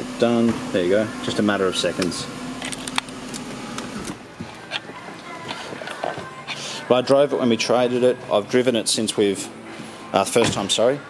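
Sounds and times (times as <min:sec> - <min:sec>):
convertible roof motor running: 0:00.0 - 0:07.0.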